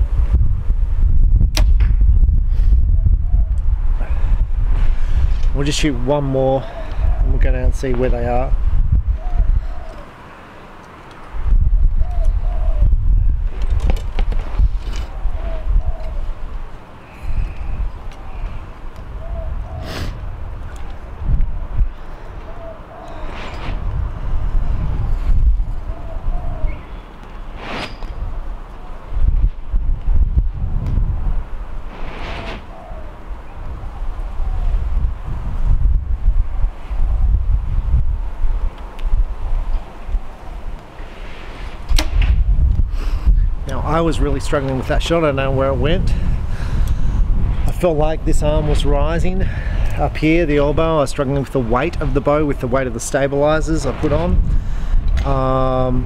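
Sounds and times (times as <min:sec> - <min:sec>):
wind buffeting microphone: 0:00.0 - 0:10.2, 0:11.0 - 0:56.0.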